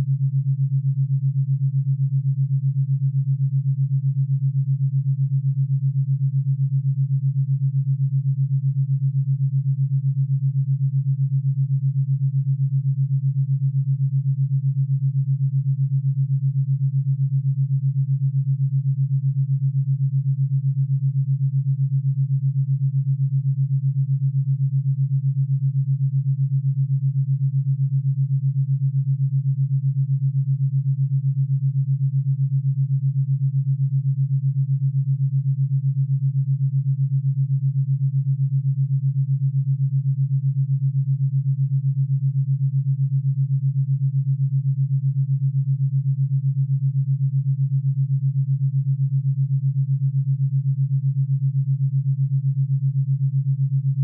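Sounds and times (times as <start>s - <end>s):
pulsing low sine tone: 0.0s - 54.0s.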